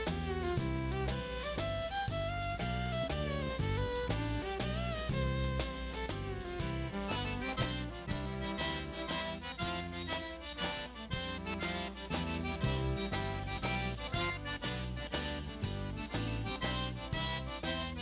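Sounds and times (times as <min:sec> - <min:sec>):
button accordion melody: 0:00.0 - 0:18.0
steady bass pattern: 0:00.0 - 0:18.0.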